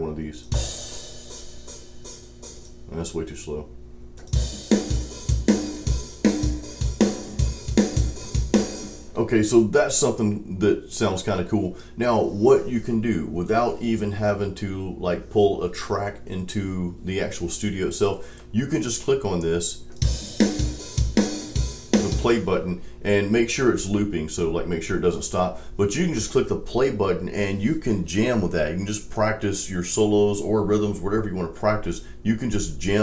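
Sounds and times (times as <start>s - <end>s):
metal drum groove: 0.4s - 3.2s, 4.2s - 10.2s, 19.9s - 22.6s
hi-hat and cymbals: 0.5s - 2.8s, 4.3s - 9.6s, 20.0s - 22.6s.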